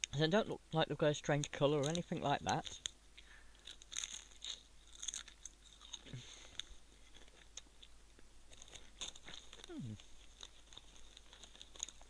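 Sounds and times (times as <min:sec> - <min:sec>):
chewing potato crisp: 0:01.8 - 0:12.0
low hum of voice: 0:09.7 - 0:10.0.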